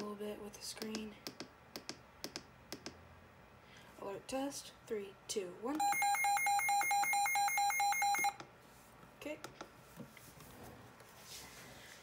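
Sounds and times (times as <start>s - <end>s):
rapid electronic alarm beeping: 5.8s - 8.4s.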